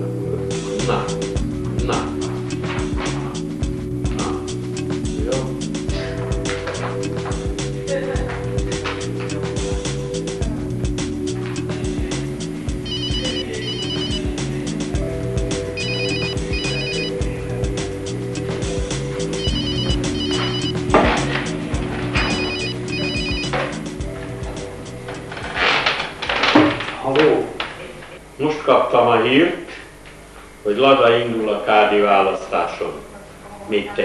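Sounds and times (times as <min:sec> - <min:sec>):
background music with beat: 0:00.0 - 0:25.8
telephone ringing: 0:12.8 - 0:14.4, 0:15.7 - 0:17.2, 0:19.4 - 0:20.9, 0:22.2 - 0:23.8.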